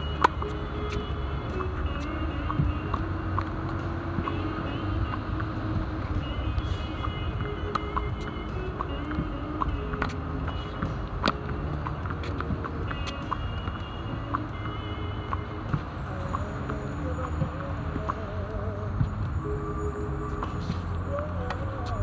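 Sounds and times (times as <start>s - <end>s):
tennis ball struck by rackets: 0.1s - 1.0s, 7.4s - 14.4s.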